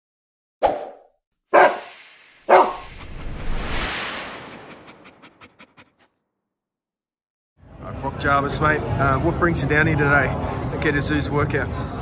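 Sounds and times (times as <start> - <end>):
dog barks: 1.5 - 1.9, 2.5 - 2.8
swell of noise: 1.6 - 6.1.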